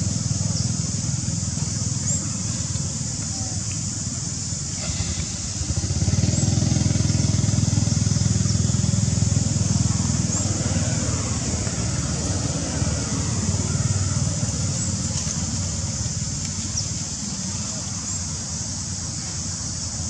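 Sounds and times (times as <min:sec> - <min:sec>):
engine rumbling: 0:00.0 - 0:20.0.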